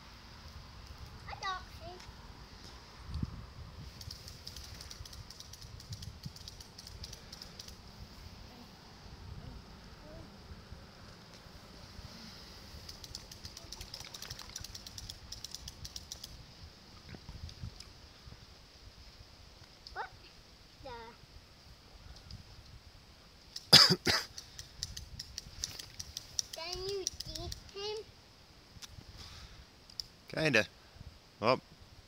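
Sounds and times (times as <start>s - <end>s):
small child's voice: 1.2s - 2.2s, 9.4s - 10.4s, 19.9s - 21.2s, 26.5s - 28.1s
fly reel clicking: 3.9s - 7.9s, 12.6s - 16.4s, 24.3s - 27.8s
person coughing: 23.7s - 24.3s.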